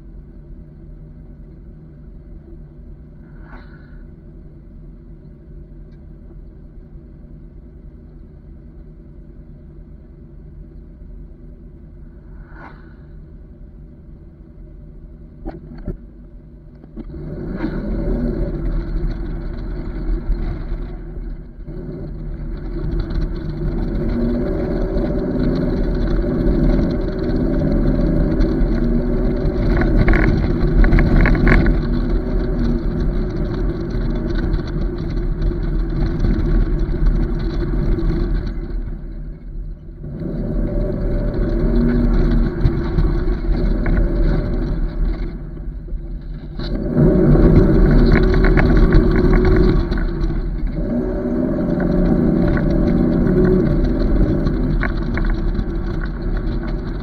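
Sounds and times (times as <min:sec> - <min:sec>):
truck pulling away and driving: 0:10.8 - 0:57.0
tyre and wind noise: 0:17.0 - 0:57.0.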